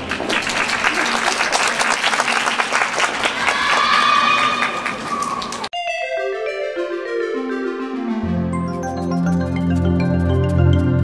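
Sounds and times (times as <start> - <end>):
audience applause: 0.0 - 5.7
bright marimba-like music: 8.6 - 11.0.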